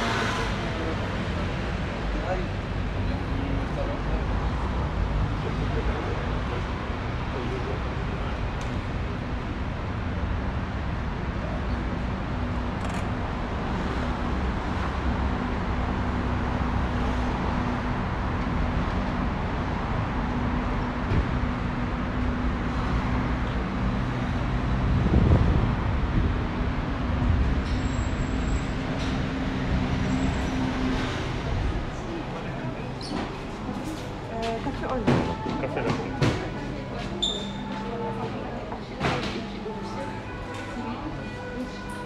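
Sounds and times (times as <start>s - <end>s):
road traffic rumble: 0.0s - 42.0s.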